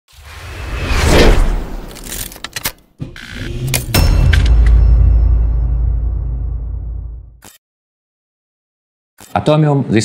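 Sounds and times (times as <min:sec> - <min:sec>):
whoosh: 0:00.1 - 0:02.0
sharp hits: 0:03.0 - 0:07.3.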